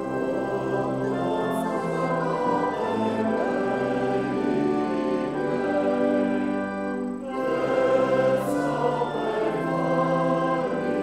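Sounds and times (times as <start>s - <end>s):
congregation singing a hymn: 0.0s - 11.0s
organ: 0.0s - 11.0s.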